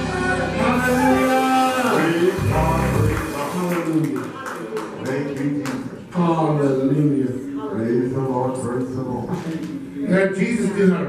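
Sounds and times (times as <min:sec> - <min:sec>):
singers holding sustained notes: 0:00.0 - 0:03.4.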